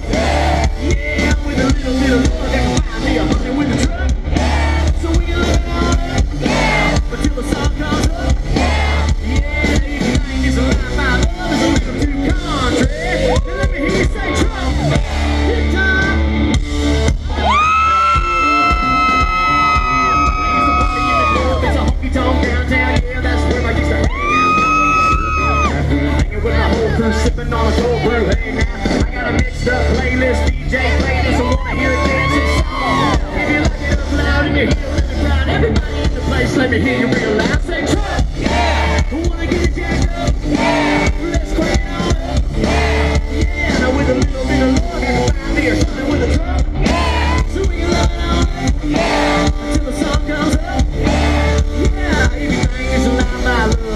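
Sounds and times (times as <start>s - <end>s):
crowd cheering and whooping: 0.0s - 1.0s, 4.2s - 5.1s, 12.8s - 16.0s, 17.2s - 22.1s, 23.9s - 25.9s, 31.0s - 33.9s, 38.1s - 39.3s, 40.3s - 41.4s, 42.3s - 43.4s, 46.6s - 48.0s, 48.7s - 49.8s, 51.0s - 51.9s
drums and bass: 0.0s - 53.9s
live country-rock band: 0.0s - 53.9s.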